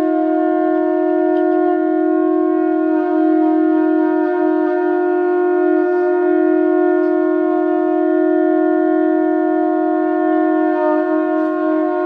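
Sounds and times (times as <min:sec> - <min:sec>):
conch shells blown: 0:00.0 - 0:12.0.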